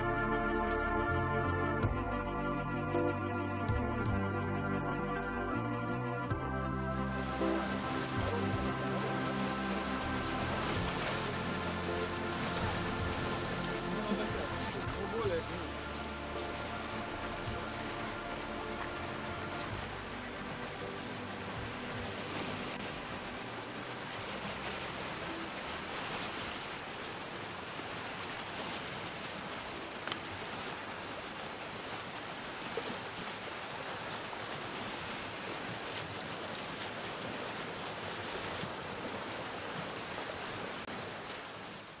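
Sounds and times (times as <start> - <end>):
waves washing on shore: 6.4 - 42.0.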